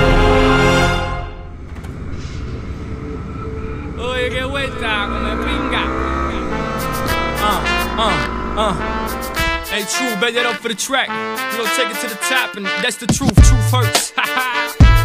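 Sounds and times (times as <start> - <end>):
motorcycle engine running: 1.6 - 9.7
hip-hop song: 6.3 - 15.0.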